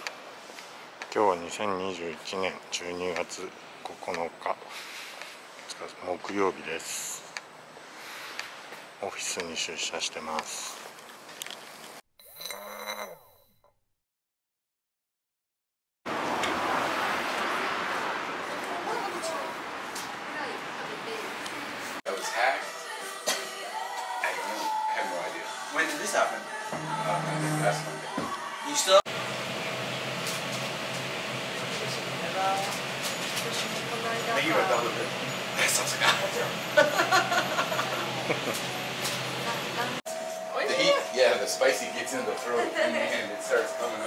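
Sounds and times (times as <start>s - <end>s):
sweeping whoosh with tones: 26.5s - 29.0s.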